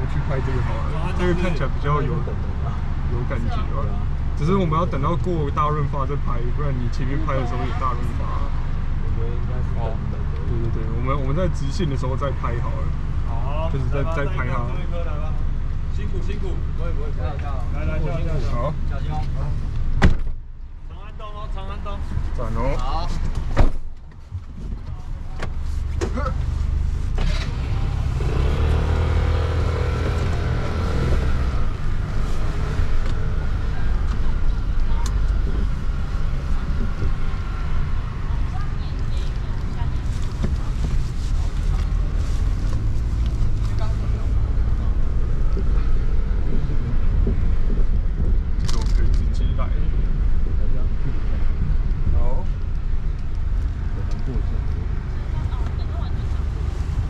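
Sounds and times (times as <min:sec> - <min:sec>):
car engine and tyre rumble: 0:00.0 - 0:57.0.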